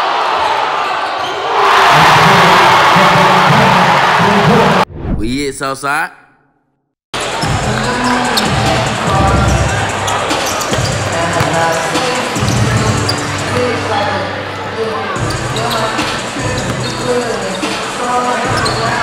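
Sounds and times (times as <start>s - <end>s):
crowd chattering: 7.2s - 19.0s.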